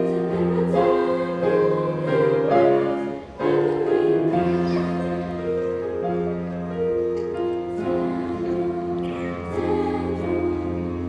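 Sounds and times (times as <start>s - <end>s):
girls' choir singing: 0.0s - 11.0s
grand piano accompaniment: 0.0s - 11.0s.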